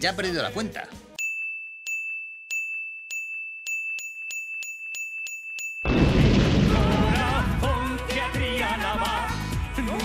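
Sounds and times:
chime-like pings: 1.2 - 6.0.

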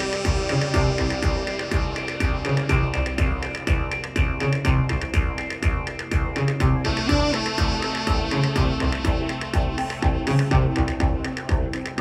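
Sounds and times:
held synth bass line: 0.0 - 12.0
pulsing electronic beat: 0.0 - 12.0
stepping melodic synth notes: 0.0 - 12.0.

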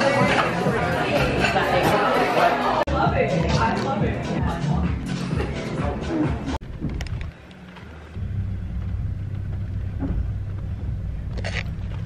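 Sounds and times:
car cabin rumble: 6.6 - 12.0.

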